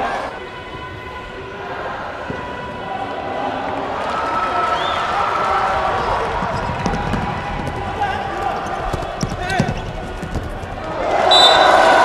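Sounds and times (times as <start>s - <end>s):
murmur of crowd voices: 0.0s - 12.0s
ball bouncing on court floor: 6.0s - 11.6s.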